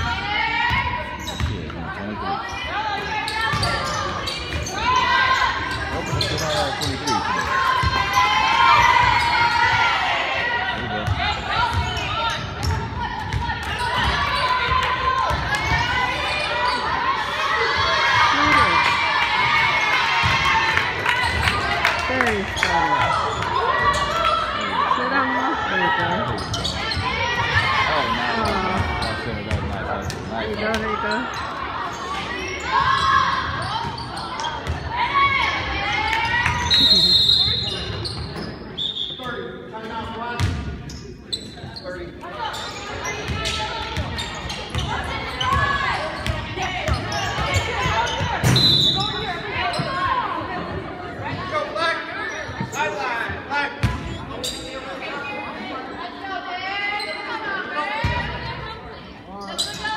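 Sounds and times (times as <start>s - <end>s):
voices calling out and talking: 0.0s - 59.9s
basketball bouncing on court: 0.7s - 1.8s, 40.4s - 40.8s.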